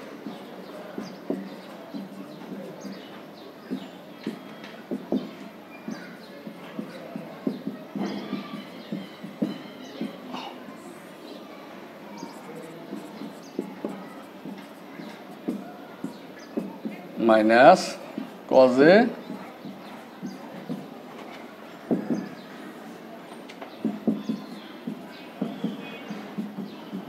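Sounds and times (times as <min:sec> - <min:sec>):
classroom room noise: 0:00.0 - 0:27.0
marker pen writing on whiteboard: 0:01.0 - 0:03.0, 0:03.7 - 0:10.2, 0:12.2 - 0:18.4, 0:23.8 - 0:27.0.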